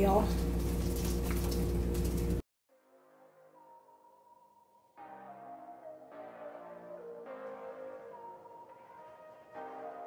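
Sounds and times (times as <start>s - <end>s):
chiles sizzling in hot oil: 0.0s - 2.4s
soft ambient music: 2.7s - 10.0s.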